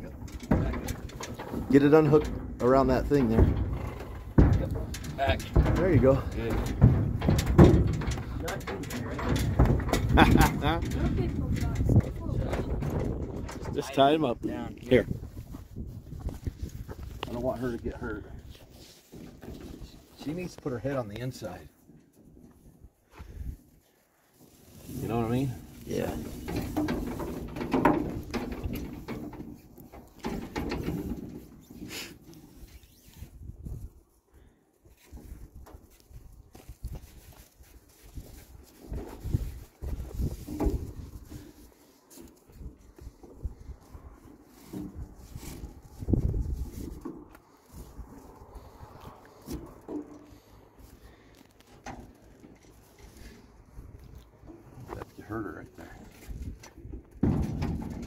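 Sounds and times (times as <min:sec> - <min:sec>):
horses knocking in metal trailer: 0:00.0 - 0:15.1, 0:25.1 - 0:32.3, 0:38.9 - 0:41.4, 0:56.4 - 0:58.0.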